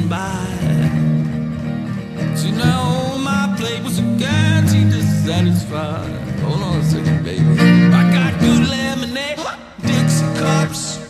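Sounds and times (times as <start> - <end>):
person singing: 0.0 - 1.4, 2.2 - 11.0
blues guitar picking: 0.0 - 11.0.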